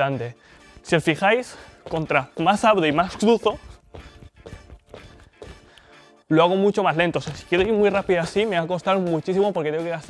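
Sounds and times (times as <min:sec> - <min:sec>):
background music: 0:00.0 - 0:10.0
sneaker steps on wooden stage: 0:01.8 - 0:05.7, 0:07.2 - 0:08.4.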